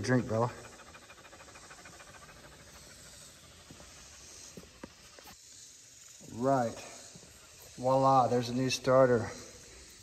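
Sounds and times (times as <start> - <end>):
dog panting: 0.0 - 5.4.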